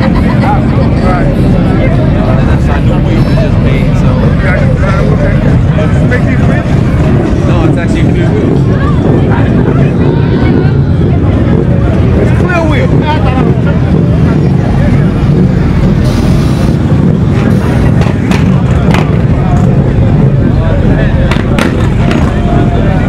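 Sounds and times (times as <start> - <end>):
crowd chatter: 0.0 - 23.0
motorcycle engines rumbling: 0.0 - 23.0.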